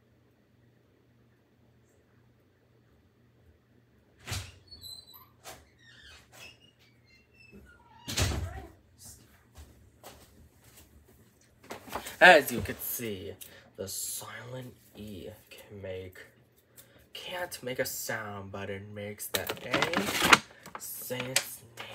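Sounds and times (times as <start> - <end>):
door squeaks: 4.2 - 8.7.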